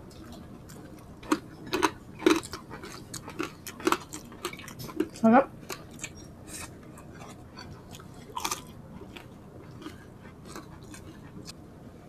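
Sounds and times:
people chewing: 0.0s - 11.6s
crunchy bite: 1.2s - 5.1s, 8.0s - 11.1s.

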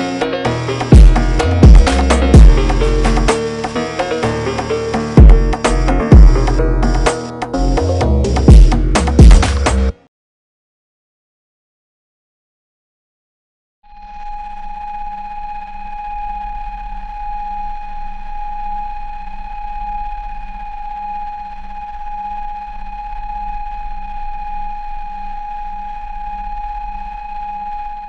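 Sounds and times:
high steady test tone: 0.7s - 9.6s.

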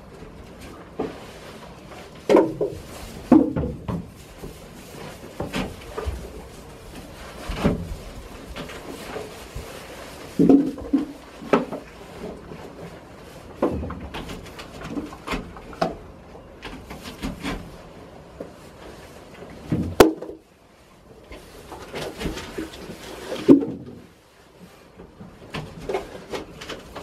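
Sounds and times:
rustling straw: 0.0s - 15.5s, 20.7s - 27.0s.

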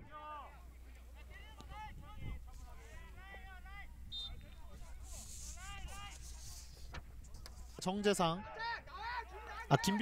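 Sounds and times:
distant players shouting: 8.4s - 10.0s.

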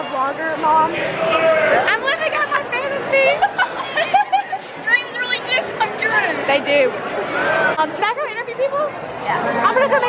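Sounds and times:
girls chattering: 1.9s - 10.0s.

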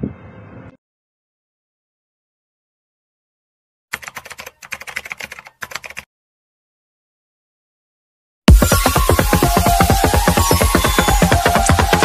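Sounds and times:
computer keyboard typing clicks: 3.9s - 6.1s.

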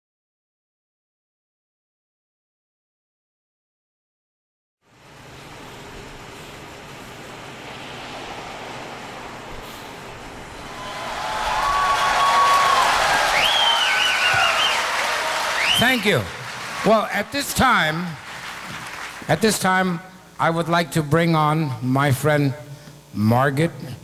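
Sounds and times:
crowd whistling: 10.6s - 19.2s
audience applauding: 10.6s - 19.8s.

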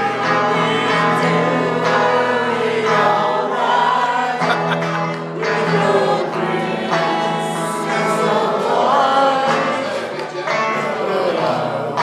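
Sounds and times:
man singing into microphone: 0.0s - 3.3s, 5.4s - 12.0s
amplified guitar: 0.0s - 12.0s
backing music: 0.0s - 12.0s.

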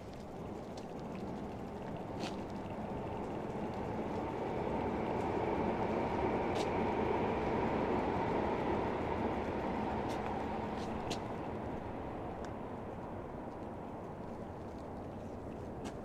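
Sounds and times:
vehicle passing with low rumble: 0.0s - 15.8s.

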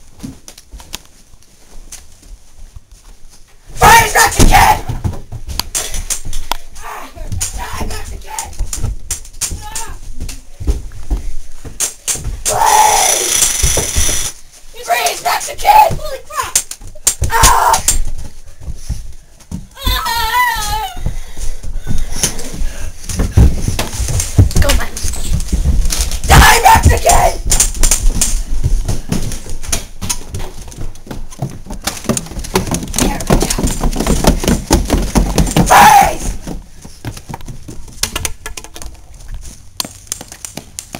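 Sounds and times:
children shouting and screaming: 3.8s - 5.0s, 12.4s - 13.4s, 14.8s - 16.6s, 17.2s - 18.1s, 19.7s - 21.2s, 26.3s - 27.5s, 35.6s - 36.4s
long loud cry: 12.5s - 13.5s, 35.7s - 36.4s
wavering high-pitched cry: 12.5s - 14.3s
knocks and thumps: 21.0s - 39.0s.

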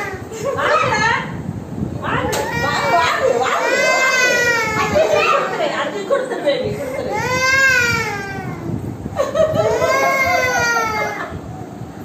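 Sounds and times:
young children's voices: 2.2s - 5.9s
toddler fussing and crying: 2.4s - 5.6s, 6.8s - 8.8s, 9.6s - 11.2s.

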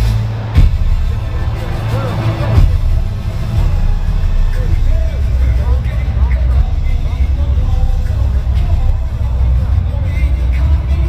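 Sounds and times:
heavy low rumble: 0.0s - 11.0s.

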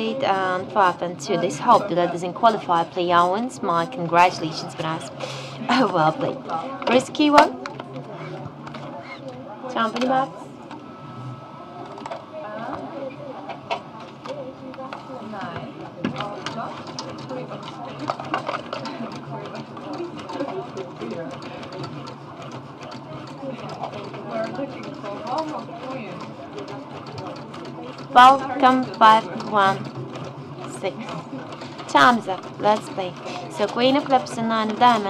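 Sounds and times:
murmur of voices: 0.0s - 35.0s.

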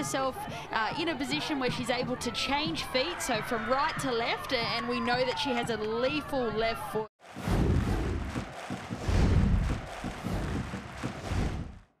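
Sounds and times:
deep booming swells: 7.4s - 8.4s, 9.0s - 11.8s.

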